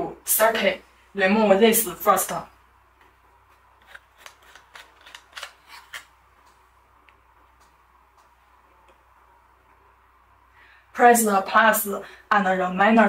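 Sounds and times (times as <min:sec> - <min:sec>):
microphone sleeve unscrewing clicks: 0:03.8 - 0:06.1.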